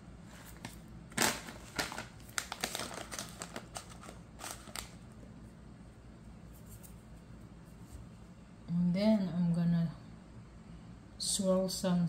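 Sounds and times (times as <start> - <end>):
plastic bag crinkling: 0.3 - 5.1.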